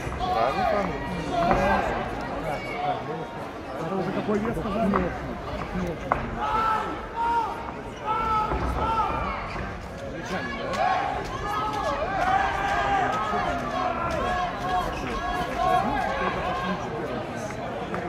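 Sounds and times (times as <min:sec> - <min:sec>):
crowd voices calling out: 0:00.0 - 0:18.0.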